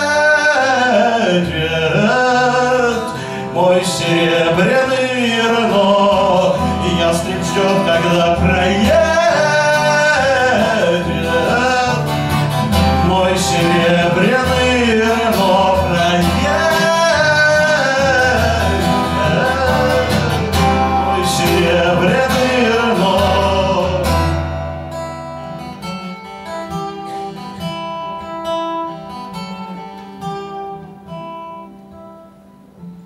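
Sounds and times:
man singing: 0.0 - 24.5
acoustic guitar: 0.0 - 33.0.

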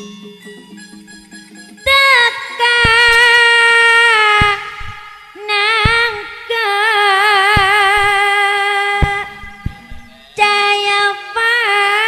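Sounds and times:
woman singing through a microphone: 1.9 - 12.0
low drum stroke: 4.4 - 5.2, 9.0 - 10.3.

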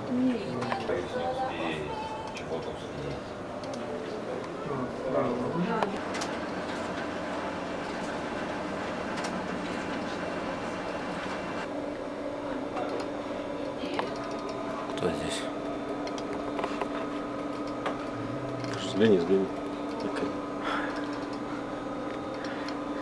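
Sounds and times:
office equipment humming: 0.0 - 23.0.

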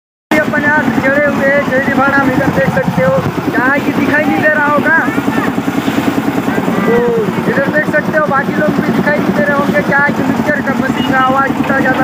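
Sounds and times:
motor engine running: 0.3 - 12.0
people's voices: 0.3 - 12.0.

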